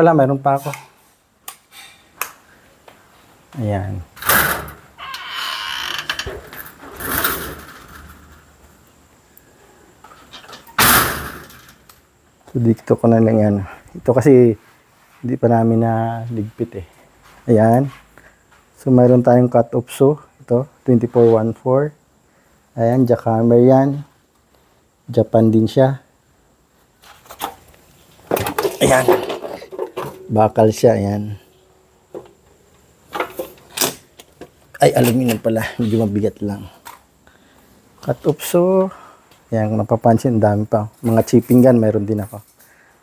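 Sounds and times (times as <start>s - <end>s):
door scraping slide: 4.2s - 8.4s
door bang: 10.8s - 11.7s.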